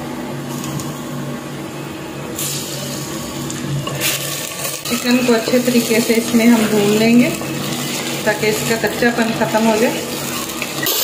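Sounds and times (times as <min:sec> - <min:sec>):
steady low hum: 0:00.0 - 0:10.9
chicken sizzling in hot oil: 0:02.4 - 0:11.0
wooden spoon stirring: 0:04.1 - 0:11.0.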